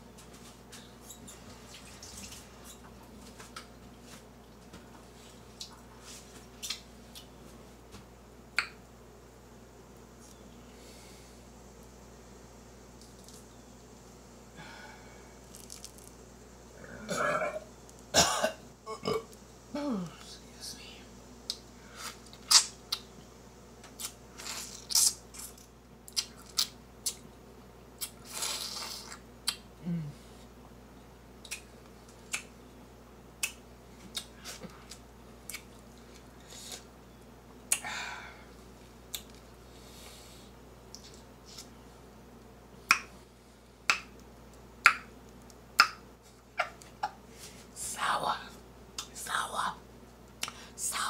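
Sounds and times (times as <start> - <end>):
wet eating sounds: 15.4 - 16.1
person eating grapefruit: 15.4 - 16.2, 21.5 - 23.1, 23.9 - 27.3, 28.0 - 30.6, 31.4 - 32.6, 33.4 - 37.8, 38.5 - 43.1
person sighing: 29.8 - 30.2, 37.8 - 38.5.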